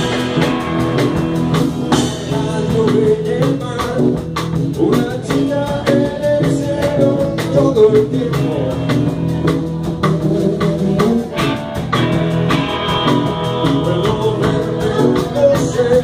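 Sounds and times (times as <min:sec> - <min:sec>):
drum kit hits: 0:00.0 - 0:06.0
bass guitar: 0:00.0 - 0:16.0
electric guitar lines: 0:00.0 - 0:16.0.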